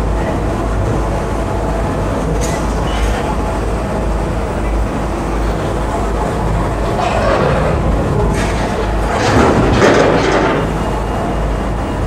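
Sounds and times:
excavator running: 0.0s - 12.0s.

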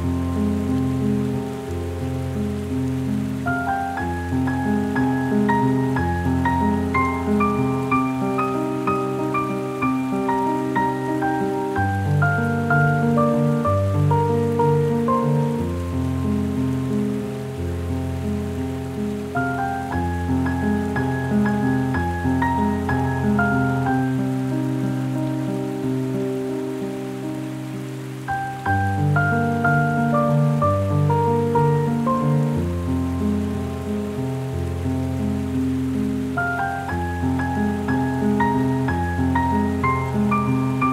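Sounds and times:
slow solo piano music: 0.0s - 40.9s.

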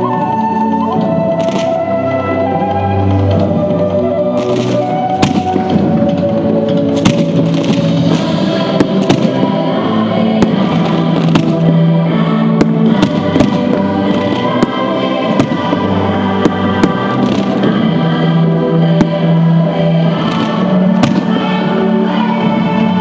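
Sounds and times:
fireworks bangs and crackles: 0.0s - 1.9s, 3.1s - 23.0s
loud music with sustained chords: 0.0s - 23.0s.

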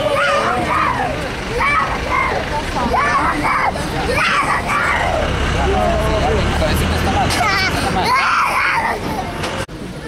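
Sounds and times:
people's voices: 0.0s - 10.0s
street traffic rumble: 0.0s - 10.0s.

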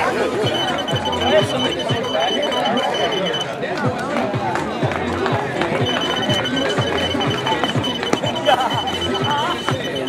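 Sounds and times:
rapid short high beeps: 0.4s - 3.6s, 5.8s - 10.0s.

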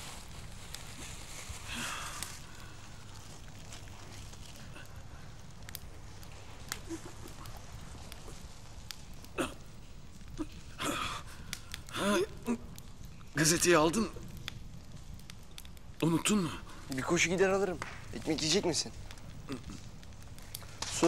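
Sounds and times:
faint clicks and rustles: 0.0s - 16.0s, 16.7s - 21.0s.

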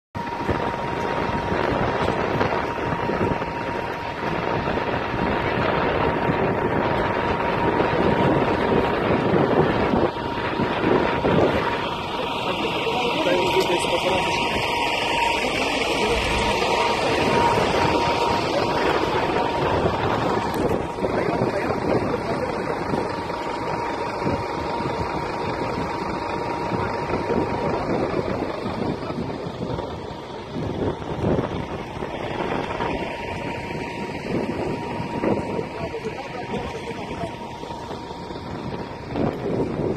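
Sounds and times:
indistinct voices: 0.2s - 39.9s
running vehicles: 0.2s - 39.9s
steady high tone: 0.2s - 39.9s
wind buffeting microphone: 0.2s - 39.9s.

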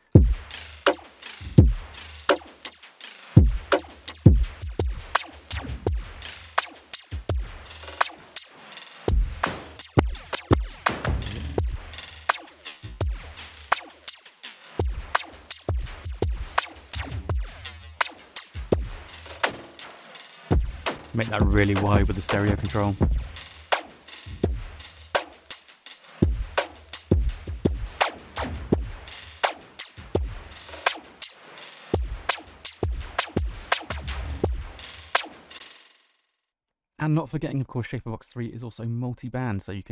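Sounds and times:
electronic drum loop with flanger: 0.0s - 35.6s.

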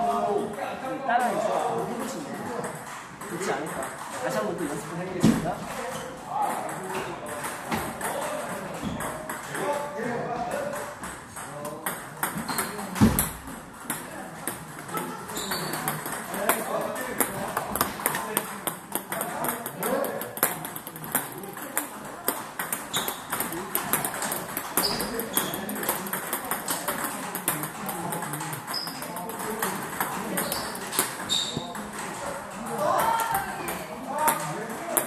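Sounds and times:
table tennis balls clicking: 1.2s - 5.1s, 5.7s - 35.0s.

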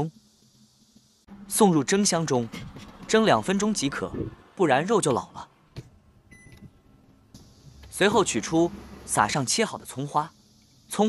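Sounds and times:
short electronic beep: 6.3s - 6.6s.

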